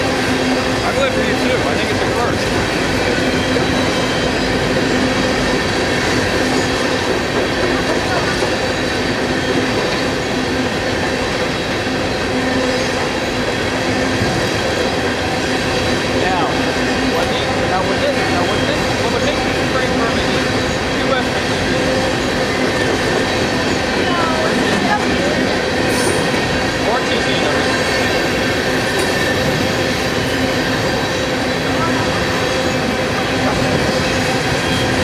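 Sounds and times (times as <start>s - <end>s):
train wheels rumbling on rails: 0.0s - 35.0s.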